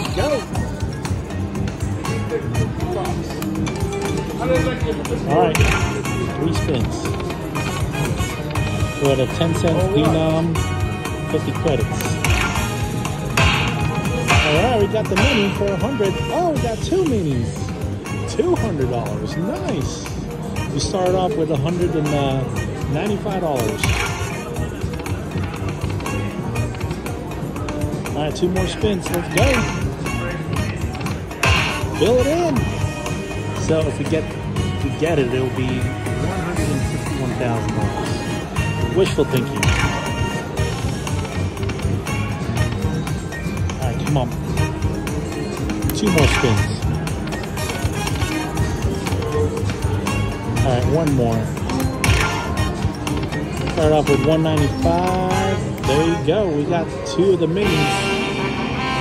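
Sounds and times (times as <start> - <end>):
slot machine music and jingles: 0.0 - 19.3, 20.6 - 27.3, 28.1 - 56.3
casino voices: 13.4 - 16.4, 45.8 - 49.7.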